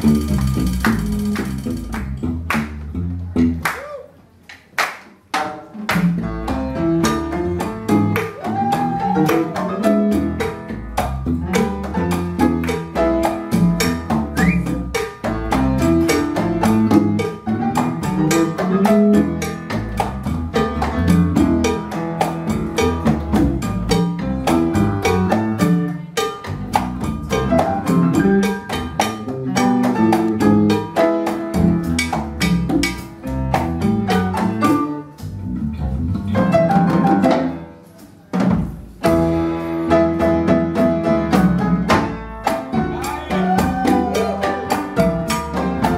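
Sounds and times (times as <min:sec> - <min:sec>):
drum kit: 0:00.0 - 0:04.0, 0:05.2 - 0:45.9
electric bass guitar: 0:00.0 - 0:04.0, 0:06.0 - 0:37.7, 0:39.0 - 0:45.9
conga drums: 0:00.0 - 0:04.2, 0:04.8 - 0:45.9
piano: 0:00.0 - 0:45.9.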